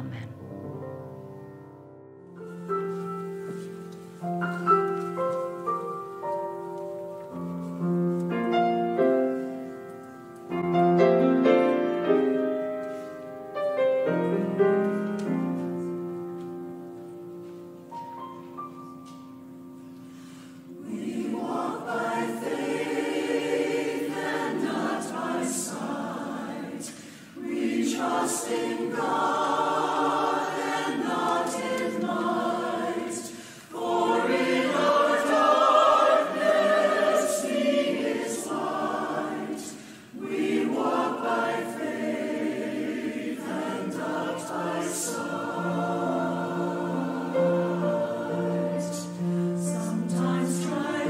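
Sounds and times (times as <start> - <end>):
piano accompaniment: 0.0 - 51.0
singers breathing: 19.8 - 20.8, 26.9 - 27.4, 33.3 - 33.8, 39.7 - 40.2
mixed choir singing an anthem: 20.6 - 51.0.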